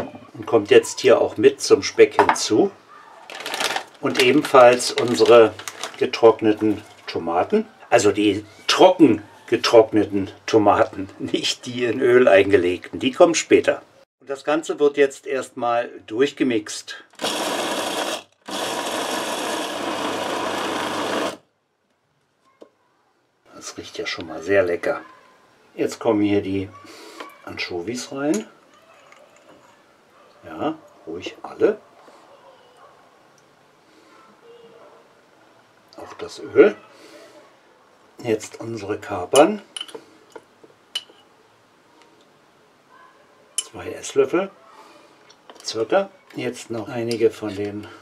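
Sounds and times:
electric chopper running: 17.2s - 21.4s.

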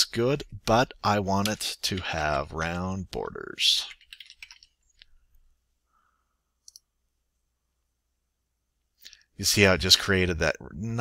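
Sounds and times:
computer mouse click: 6.6s - 6.9s.

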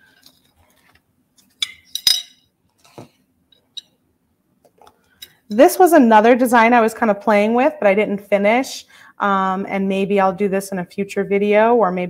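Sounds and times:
glass beads clinking on glass dish: 1.6s - 2.5s.

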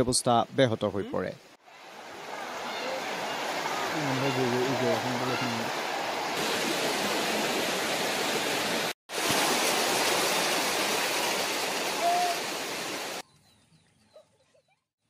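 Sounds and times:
fast-flowing floodwater: 1.6s - 13.2s.

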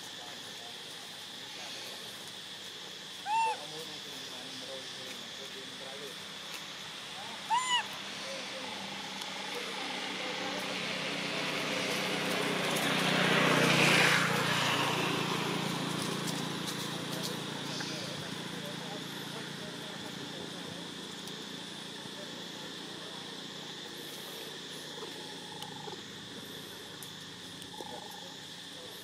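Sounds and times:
monkey high calls: 3.2s - 3.8s, 7.1s - 8.4s.

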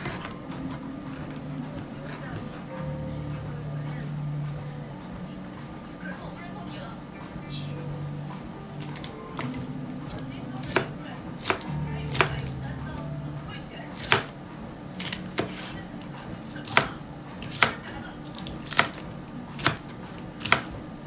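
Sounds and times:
cleaver chopping on plastic board: 14.0s - 14.3s, 16.6s - 19.0s, 19.6s - 20.7s.

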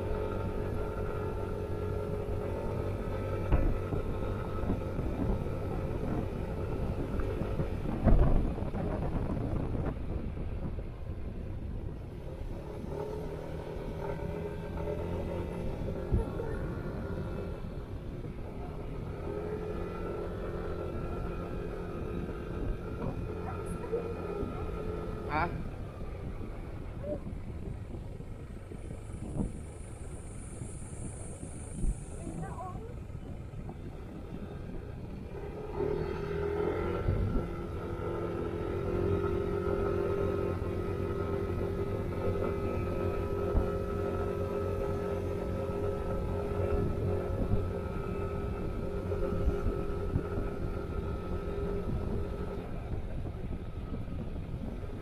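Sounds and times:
scooter engine running: 0.0s - 55.0s
wind noise on microphone: 0.0s - 55.0s.

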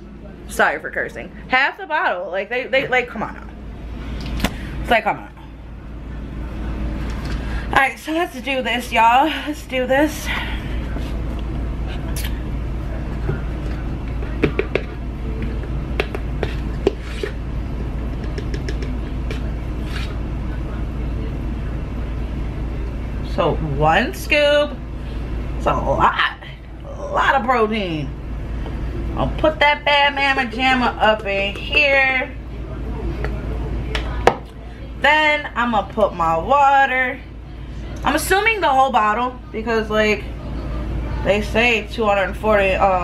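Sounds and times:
low hum: 0.0s - 43.0s.

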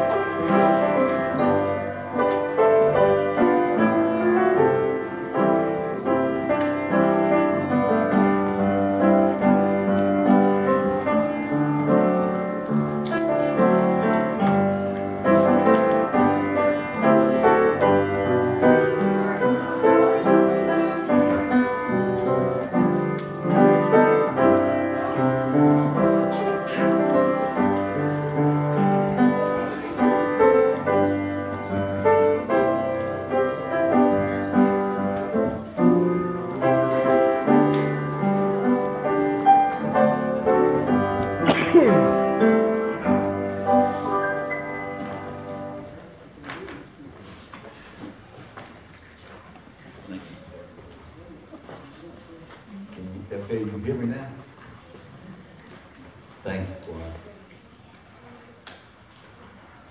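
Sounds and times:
slow piano piece: 0.0s - 59.9s.

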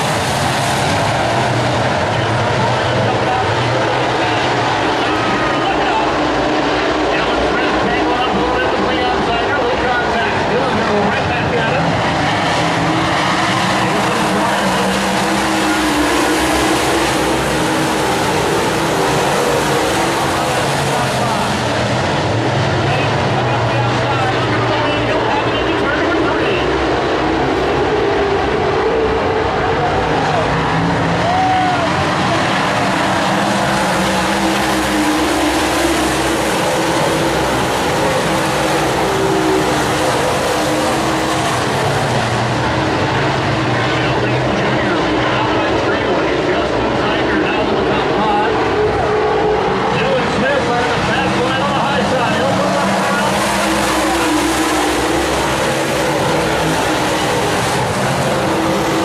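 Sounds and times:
race car engines roaring: 0.0s - 59.0s.

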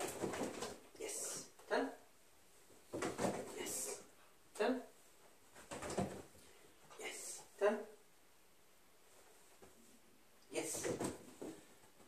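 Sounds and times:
person speaking: 0.9s - 2.1s, 3.3s - 5.0s, 6.9s - 8.1s, 10.4s - 11.3s.

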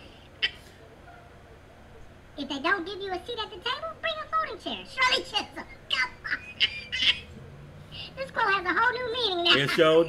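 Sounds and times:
man laughing: 5.6s - 7.4s, 9.4s - 10.0s.

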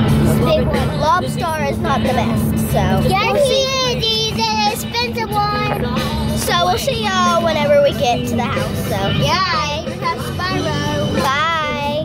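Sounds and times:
girl singing: 0.3s - 12.0s.

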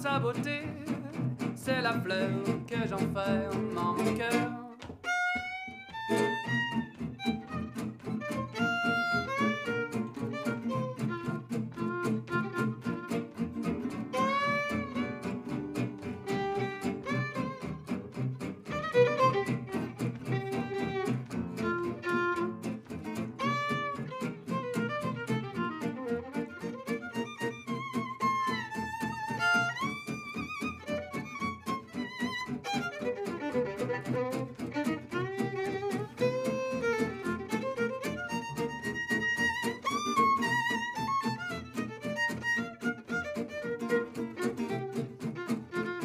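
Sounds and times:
bowed violin melody: 0.0s - 46.0s
strummed acoustic guitars: 0.0s - 46.0s.

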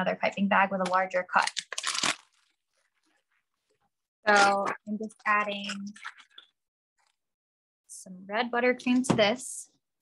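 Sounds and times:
plastic piping bag crinkling: 1.0s - 7.2s
person speaking: 4.3s - 6.4s.

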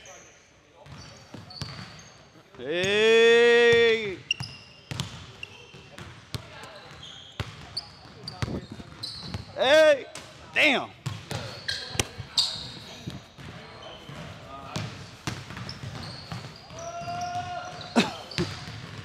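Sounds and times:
sneakers squeaking on court: 0.0s - 2.6s, 4.2s - 9.6s, 11.0s - 19.0s
basketballs bouncing on hardwood: 4.9s - 5.2s, 11.0s - 12.3s, 13.0s - 19.0s.

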